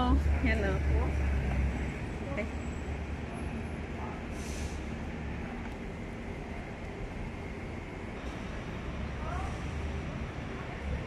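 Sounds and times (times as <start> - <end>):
traffic engine rumble: 0.0 - 11.0
short hiss: 4.4 - 4.8.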